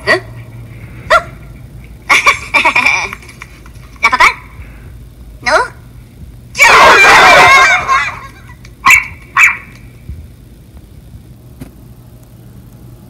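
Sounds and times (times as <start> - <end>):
dog barking: 1.1 - 1.4, 8.8 - 9.7.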